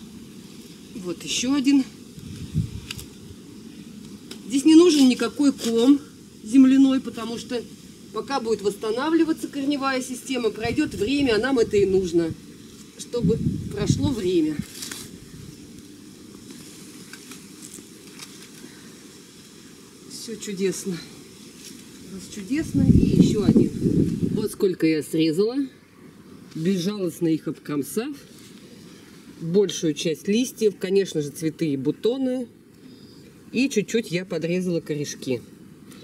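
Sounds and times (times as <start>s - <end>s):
soil and leaves rustling: 0.0s - 36.0s.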